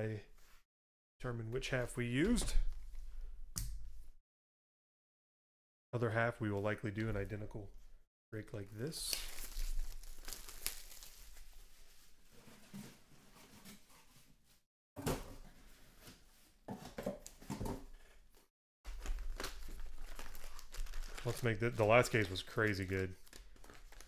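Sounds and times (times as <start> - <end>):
plastic shrink-wrap crinkling and tearing: 9.0 - 11.8, 18.9 - 24.0.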